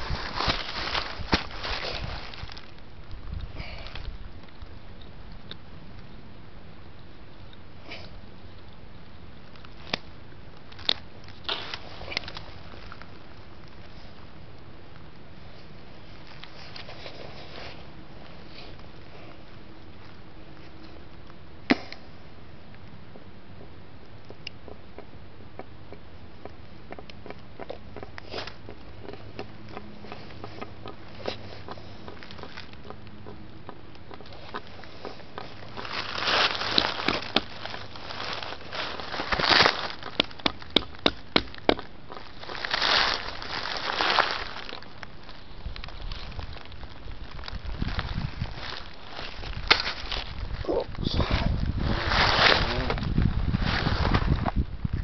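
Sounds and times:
dry leaves crackling and rustling: 0.0s - 4.7s, 9.4s - 21.1s, 34.3s - 55.0s.

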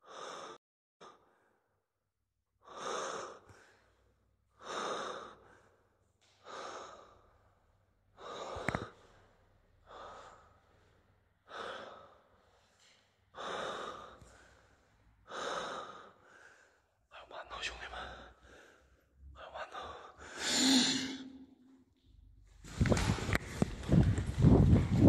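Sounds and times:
person breathing heavily: 2.6s - 21.8s.

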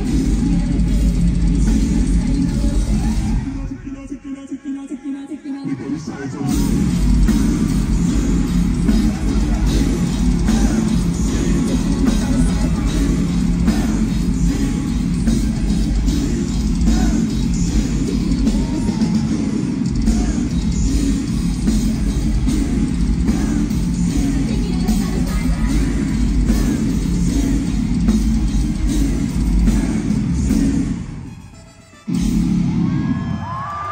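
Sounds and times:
heavy metal band playing live: 0.0s - 3.8s, 5.9s - 31.3s, 32.1s - 33.5s.

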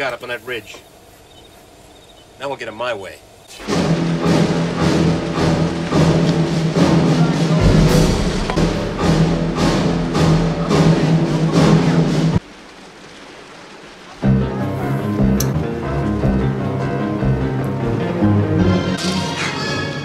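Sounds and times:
orchestral music with timpani: 3.6s - 12.4s, 14.6s - 20.0s.

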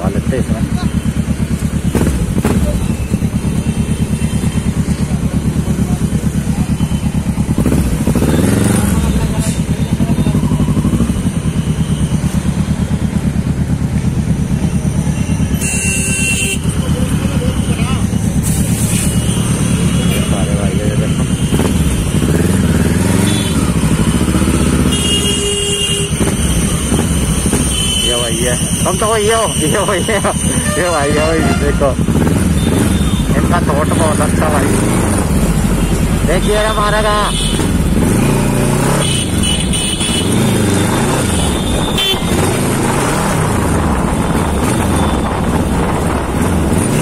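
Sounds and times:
motorcycle engine idling: 0.0s - 30.8s
vehicle horn: 15.4s - 18.0s, 18.9s - 23.8s, 24.7s - 34.7s, 35.7s - 42.7s.

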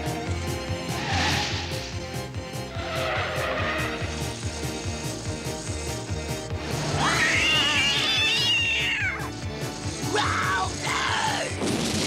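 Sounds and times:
cartoon music with steady beat: 0.0s - 11.0s
cat yowling: 7.0s - 9.3s.

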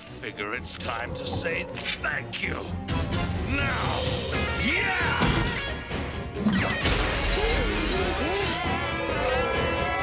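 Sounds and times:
dramatic cartoon music: 0.0s - 10.0s.

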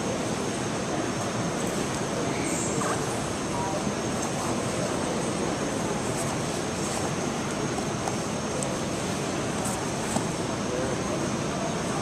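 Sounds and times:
large hall background roar: 0.0s - 12.0s.

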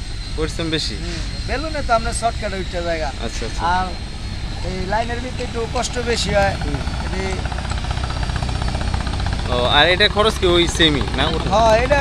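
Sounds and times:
engine rumbling: 0.0s - 12.0s
man speaking: 0.4s - 4.0s, 4.6s - 7.5s, 9.4s - 12.0s.

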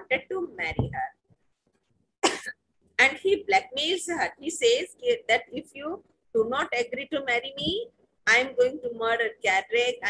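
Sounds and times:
woman coughing: 2.2s - 2.6s.

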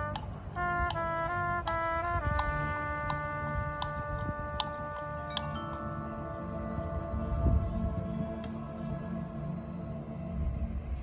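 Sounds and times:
marching band music: 0.0s - 11.0s.

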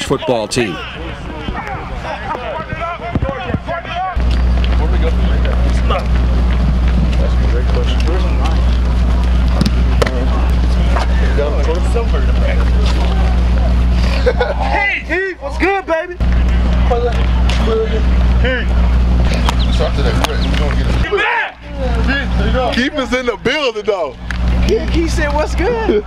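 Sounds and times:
loud low engine-like hum: 0.0s - 26.0s
scattered voices outdoors: 0.0s - 26.0s.

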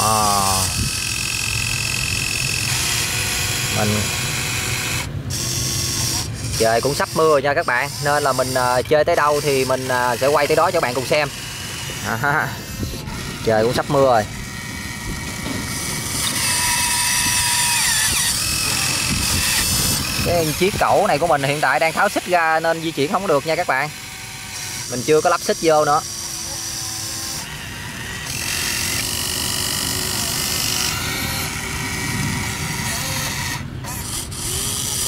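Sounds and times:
high motor whine: 0.0s - 35.0s
toy excavator motors whirring: 0.0s - 35.0s.

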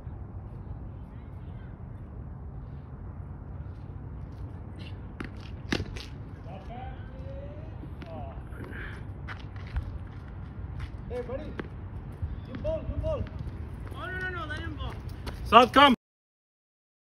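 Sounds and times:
faint distant voices: 0.0s - 2.9s
steady low rumble: 0.0s - 15.6s.

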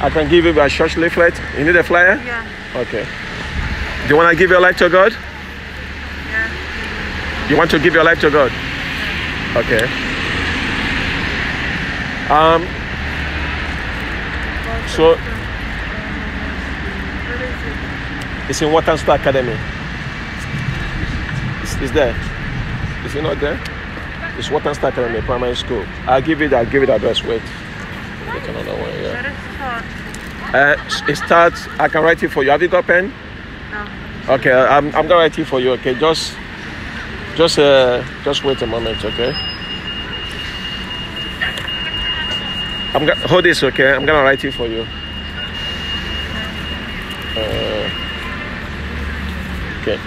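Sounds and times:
low city rumble: 0.0s - 50.0s
high-pitched tone: 37.0s - 50.0s.

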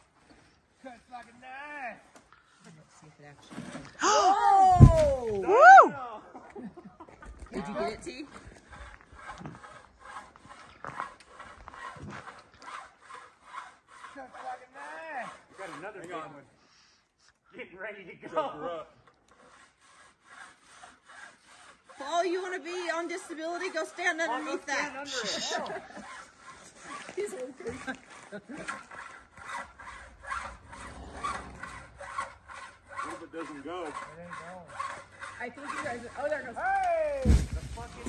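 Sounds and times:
saw rasping through snow: 7.6s - 16.9s, 19.3s - 38.0s.

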